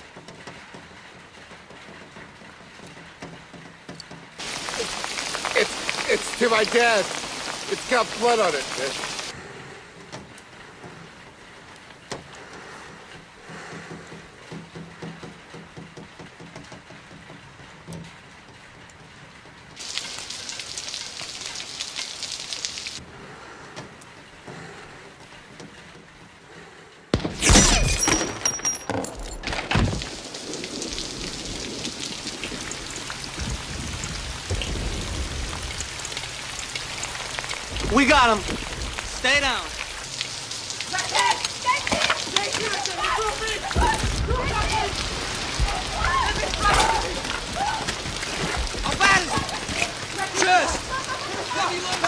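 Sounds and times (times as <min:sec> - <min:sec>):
heavy rain falling: 0:00.0 - 0:27.2, 0:28.0 - 0:52.0
glass shattering: 0:27.3 - 0:30.0.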